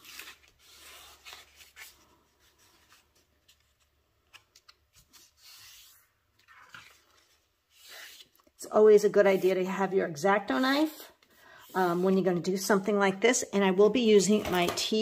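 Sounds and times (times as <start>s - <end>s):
paper rustling and folding: 0.0s - 8.6s.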